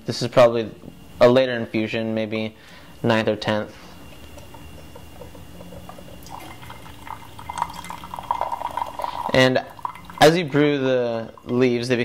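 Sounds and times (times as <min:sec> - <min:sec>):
tea pouring into glass pitcher: 0:04.8 - 0:11.9.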